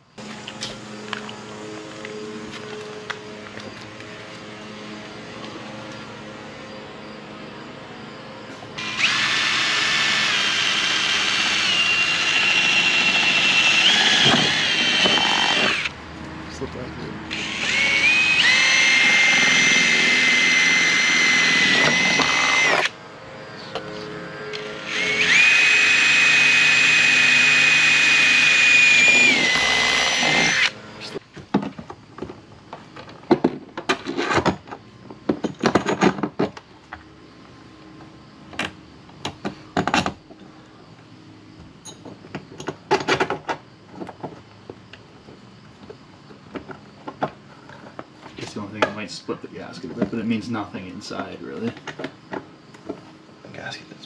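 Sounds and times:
cordless drill whining: 0:08.8 - 0:15.9, 0:17.3 - 0:23.0, 0:24.6 - 0:30.8.

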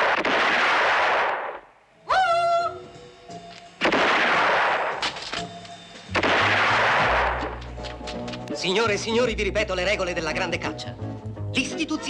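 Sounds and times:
echoing gunfire bursts: 0:00.0 - 0:01.6, 0:03.8 - 0:05.0, 0:06.1 - 0:07.6
film music: 0:01.8 - 0:12.0.

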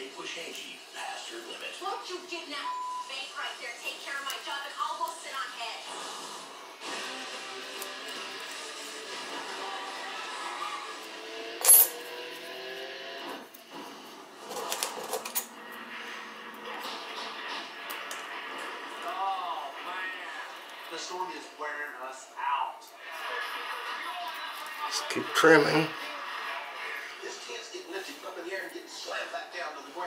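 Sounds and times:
television speech: 0:00.0 - 0:11.4, 0:15.5 - 0:30.0
television music: 0:00.0 - 0:30.0
metal blade clinking on tabletop: 0:11.6 - 0:12.1.

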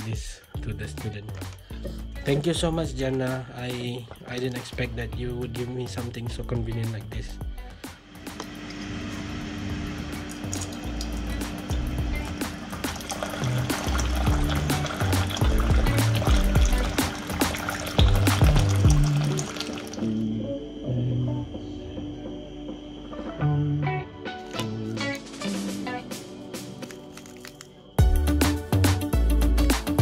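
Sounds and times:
background music: 0:00.0 - 0:30.0
water pouring into a mug: 0:10.2 - 0:20.2.

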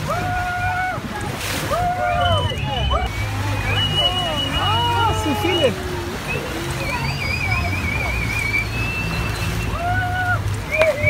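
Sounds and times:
boat engine droning: 0:00.0 - 0:11.0
water noise: 0:00.0 - 0:11.0
wind: 0:00.0 - 0:11.0.

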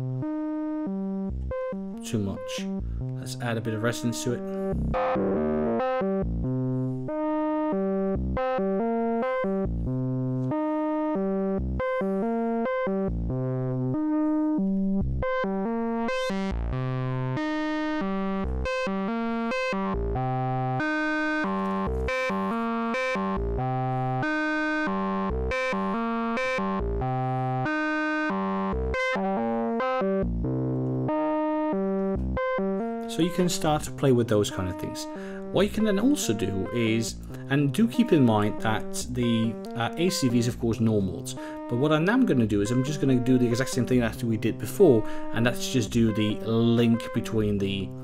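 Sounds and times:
buzzy synthesizer low notes: 0:00.0 - 0:48.0.

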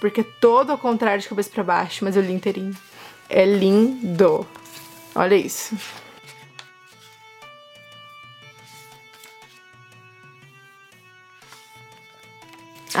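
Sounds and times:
slow background melody: 0:00.0 - 0:13.0.

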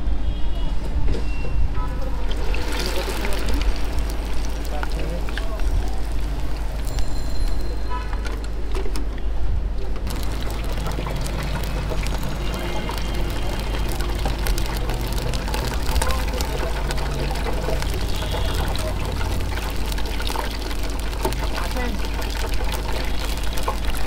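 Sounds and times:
oil sizzling and crackling: 0:02.2 - 0:08.2, 0:10.0 - 0:24.0
deep fryer low hum: 0:09.8 - 0:24.0.

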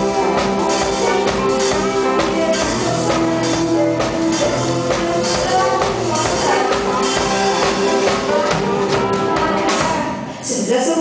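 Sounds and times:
drum beat: 0:00.0 - 0:10.2
live band playing: 0:00.0 - 0:10.7.

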